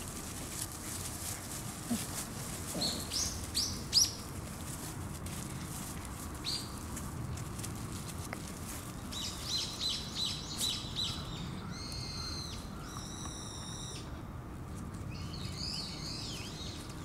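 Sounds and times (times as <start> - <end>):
bird calling: 2.7 - 4.2.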